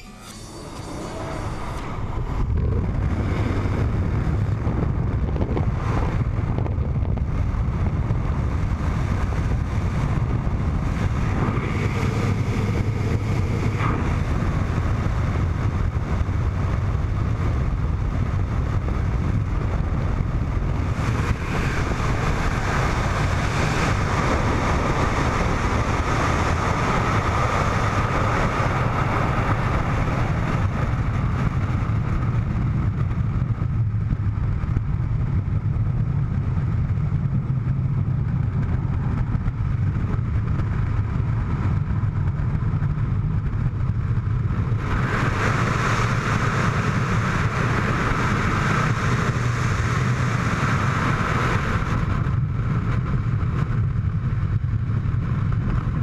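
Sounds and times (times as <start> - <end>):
freefall wind buffeting microphone: 0.0 - 56.0.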